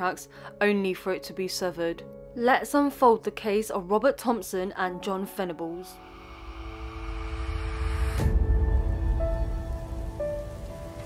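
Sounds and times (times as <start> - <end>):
dark ambient music: 5.9 - 11.0
low rumble: 6.0 - 11.0.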